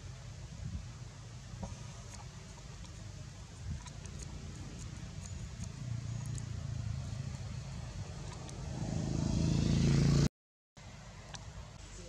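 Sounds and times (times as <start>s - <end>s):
vehicle engine humming: 1.0s - 12.0s.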